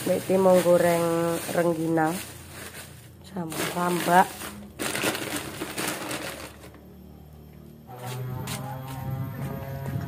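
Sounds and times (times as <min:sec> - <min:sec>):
plastic bag crinkling: 0:00.0 - 0:06.8
background music with held notes: 0:07.7 - 0:10.0.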